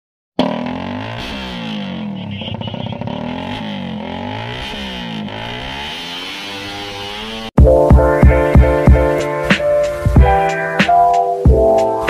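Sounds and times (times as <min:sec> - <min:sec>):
motorcycle engines revving: 0:00.4 - 0:07.6.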